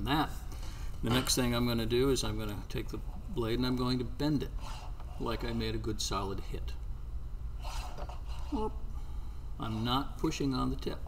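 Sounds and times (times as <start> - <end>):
steady low hum: 0.0 - 11.0
man breathing: 0.4 - 1.0, 8.9 - 9.6.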